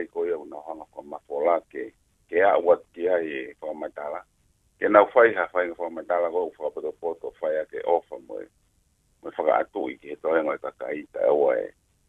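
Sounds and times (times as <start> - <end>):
person speaking over telephone: 0.0 - 4.2, 4.8 - 8.4, 9.3 - 11.7.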